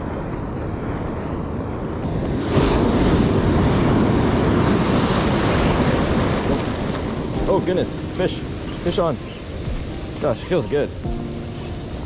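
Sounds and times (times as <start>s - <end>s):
ocean surf rushing and foaming: 0.0s - 12.0s
wind buffeting microphone: 0.0s - 12.0s.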